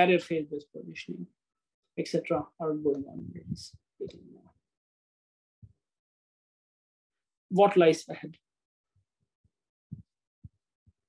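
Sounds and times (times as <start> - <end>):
faint low thumps: 3.0 - 3.8.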